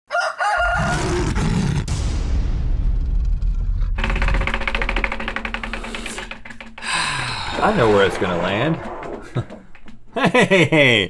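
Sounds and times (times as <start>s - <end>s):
deep rumble: 1.8s - 10.2s
rapid clicking: 3.9s - 10.5s
long whoosh: 6.9s - 10.1s.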